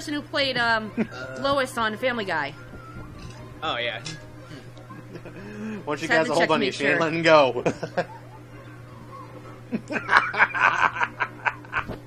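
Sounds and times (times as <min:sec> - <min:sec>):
low electrical hum: 0:00.0 - 0:12.0
man snickering: 0:00.9 - 0:01.5, 0:04.4 - 0:05.9, 0:07.6 - 0:08.7, 0:09.3 - 0:12.0.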